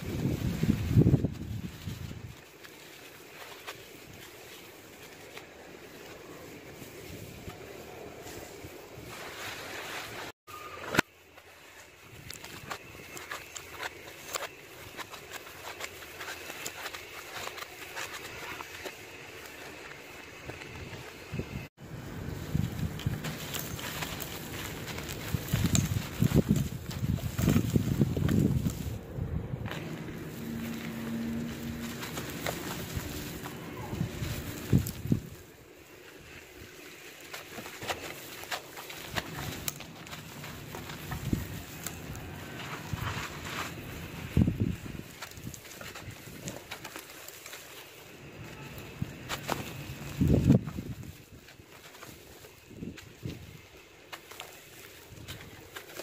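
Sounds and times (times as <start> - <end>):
charcoal crunching in hands: 0.0 - 56.0.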